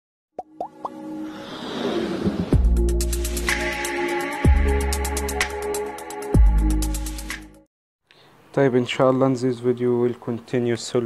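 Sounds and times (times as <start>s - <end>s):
quick rising pops: 0.6s - 2.8s.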